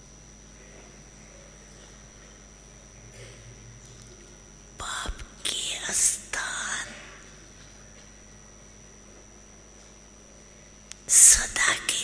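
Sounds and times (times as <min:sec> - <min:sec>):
woman whispering: 0:04.8 - 0:07.3, 0:11.1 - 0:12.0.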